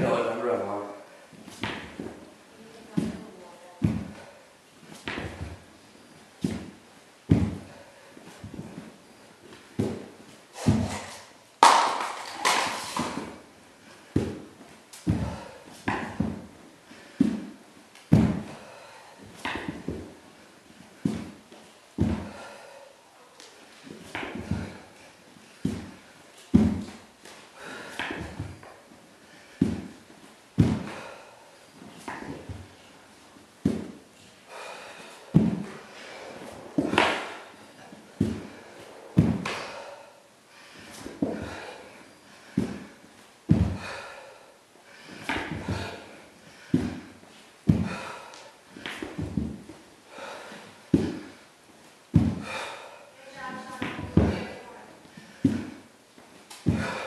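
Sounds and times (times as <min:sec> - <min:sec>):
hands and feet thudding on floor: 0:01.4 - 0:02.2, 0:02.8 - 0:05.6, 0:06.4 - 0:08.9, 0:14.0 - 0:20.2, 0:22.0 - 0:22.4, 0:23.8 - 0:24.8, 0:25.6 - 0:28.8, 0:30.6 - 0:31.1, 0:33.6 - 0:34.0, 0:35.2 - 0:39.8, 0:40.8 - 0:41.6, 0:42.4 - 0:43.9, 0:45.2 - 0:48.1, 0:48.8 - 0:49.8, 0:50.8 - 0:51.4, 0:52.1 - 0:52.6, 0:53.6 - 0:57.0
man breathing hard: 0:15.0 - 0:17.5, 0:18.3 - 0:21.4, 0:22.0 - 0:23.1, 0:27.5 - 0:29.9, 0:30.7 - 0:31.8, 0:34.4 - 0:49.0, 0:50.0 - 0:51.5, 0:52.2 - 0:53.2, 0:56.6 - 0:57.0.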